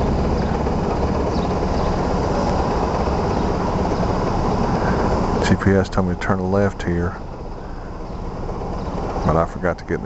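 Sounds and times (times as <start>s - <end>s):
scooter engine idling: 0.0s - 10.0s.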